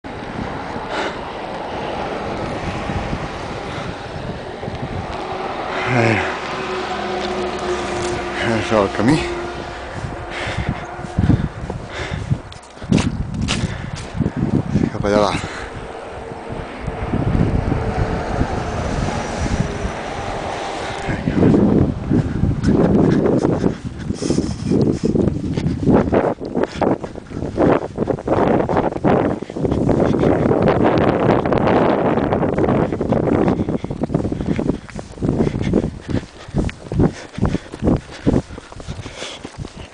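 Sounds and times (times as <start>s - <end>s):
wind buffeting microphone: 0.0s - 39.9s
running footsteps in snow: 0.3s - 17.2s, 17.8s - 39.9s.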